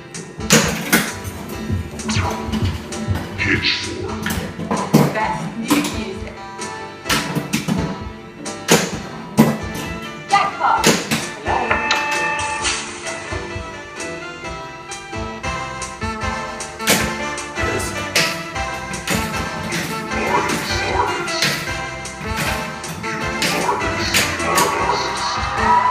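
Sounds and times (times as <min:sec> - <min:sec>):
music: 0:00.0 - 0:25.9
pinball clacks and thuds: 0:00.4 - 0:03.4, 0:07.1 - 0:10.2, 0:10.8 - 0:12.8, 0:16.8 - 0:24.9.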